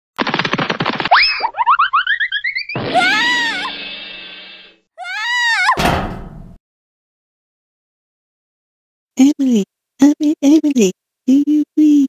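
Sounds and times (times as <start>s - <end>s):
cartoon pattering run: 0.2s - 3.5s.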